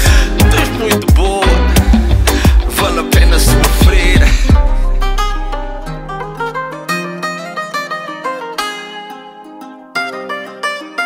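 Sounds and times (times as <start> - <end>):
plucked-string melody: 0.0 - 11.0
held low note: 3.2 - 6.7.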